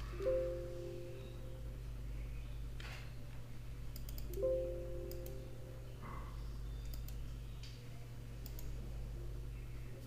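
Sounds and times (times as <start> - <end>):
steady low hum: 0.0 - 10.0
computer mouse clicks: 3.9 - 4.4, 5.1 - 5.4, 6.8 - 7.8, 8.4 - 8.8.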